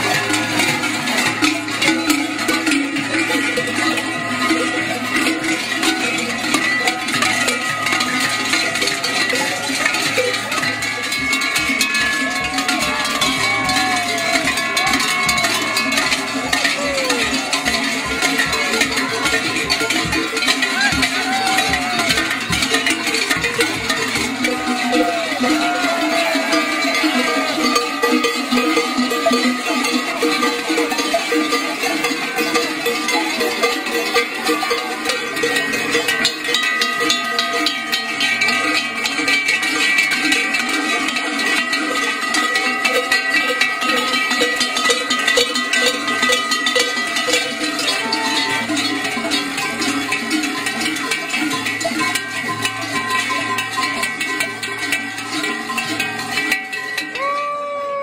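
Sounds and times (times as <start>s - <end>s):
cowbells clanging: 0.0s - 58.0s.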